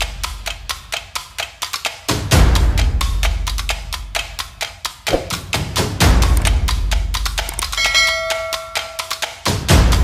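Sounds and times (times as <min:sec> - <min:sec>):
percussive music with beat: 0:00.0 - 0:10.0
bright bell-like ding: 0:07.8 - 0:09.2.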